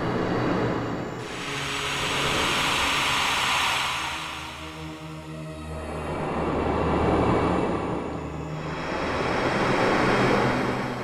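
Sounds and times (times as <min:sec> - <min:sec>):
rushing whoosh of blown air: 0:01.2 - 0:06.1.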